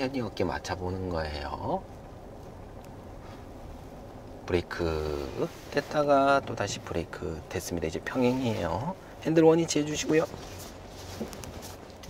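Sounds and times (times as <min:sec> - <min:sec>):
car interior hum: 0:00.0 - 0:12.0.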